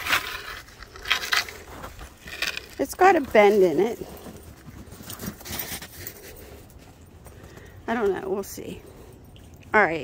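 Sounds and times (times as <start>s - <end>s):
footsteps crunching in snow: 0.0s - 8.4s.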